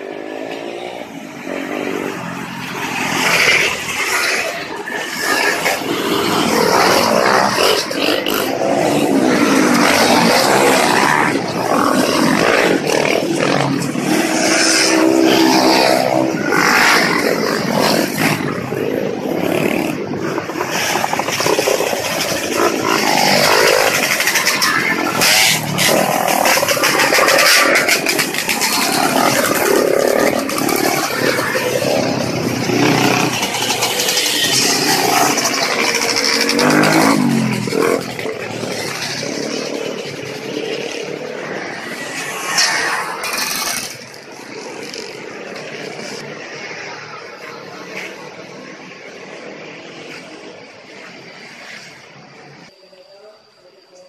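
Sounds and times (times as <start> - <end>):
motorcycles revving past: 0.0 - 52.0.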